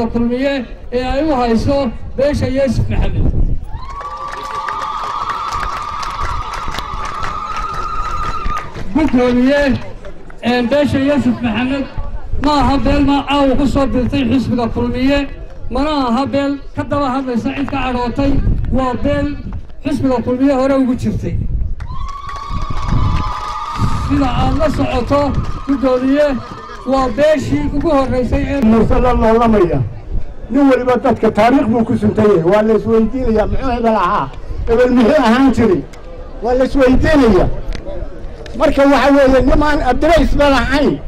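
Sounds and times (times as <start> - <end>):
crowd cheering: 3.6 - 9.1, 21.8 - 27.8
people clapping: 3.8 - 10.4, 21.8 - 28.0.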